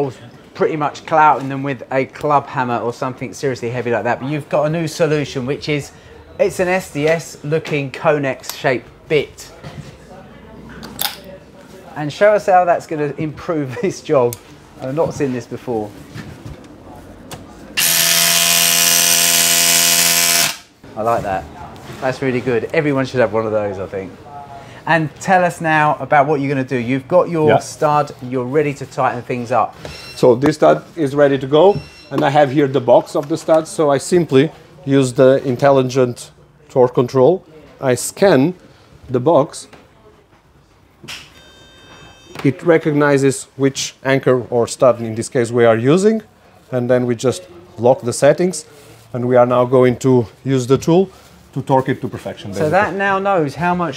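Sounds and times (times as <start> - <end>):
electronic beep: 29.9 - 30.2, 31.7 - 32.1.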